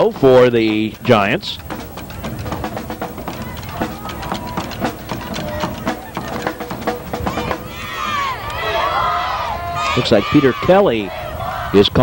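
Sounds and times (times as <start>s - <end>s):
drums playing a rapid beat: 0.0s - 8.5s
faint held notes: 0.0s - 12.0s.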